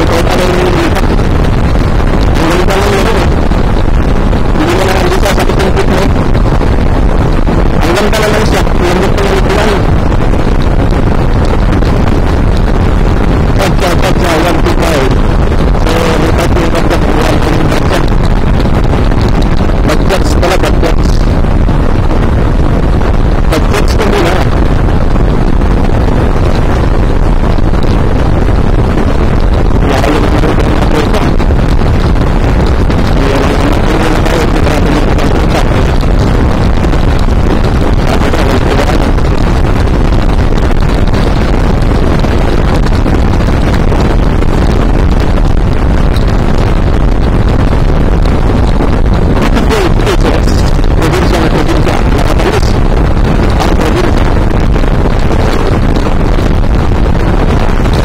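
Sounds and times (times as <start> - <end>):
wind rush on microphone: 0.0 - 58.0.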